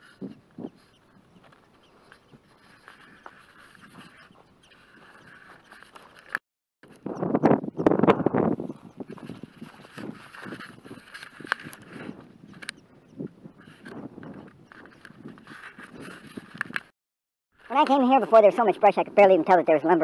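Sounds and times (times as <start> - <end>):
wind buffeting microphone: 0.0 - 16.9
footsteps through dry grass: 0.2 - 6.4, 8.5 - 12.3.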